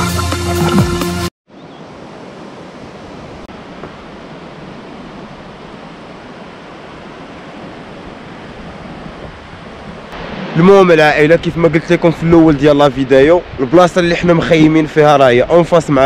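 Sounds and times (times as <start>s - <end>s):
music: 0.0s - 1.3s
sea surf washing onto beach: 2.0s - 16.0s.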